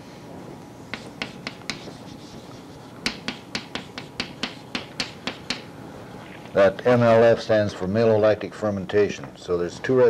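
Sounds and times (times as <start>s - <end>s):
chalk tapping on blackboard: 0.9s - 5.7s.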